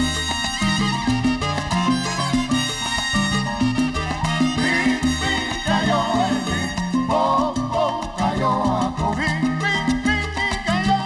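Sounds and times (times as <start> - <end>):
salsa band playing: 0.0 - 11.0.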